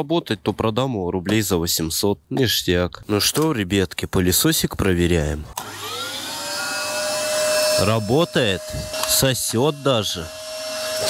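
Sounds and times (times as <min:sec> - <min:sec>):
vacuum cleaner motor whine: 0:05.6 - 0:11.0.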